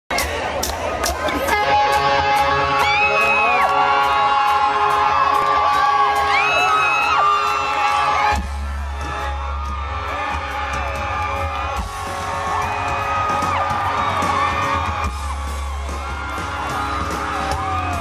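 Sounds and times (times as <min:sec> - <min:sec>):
live rock band: 0:00.1 - 0:18.0
crowd whooping and yelling: 0:00.2 - 0:18.0
electric guitar: 0:00.2 - 0:18.0.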